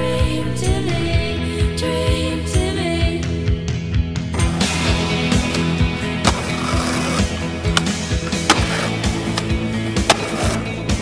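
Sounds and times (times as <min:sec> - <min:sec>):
music soundtrack: 0:00.0 - 0:11.0
skateboard wheels rolling on pavement: 0:04.6 - 0:11.0.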